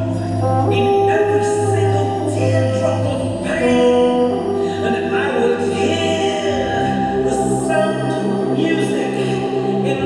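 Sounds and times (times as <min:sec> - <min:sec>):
sustained tones: 0:00.0 - 0:10.0.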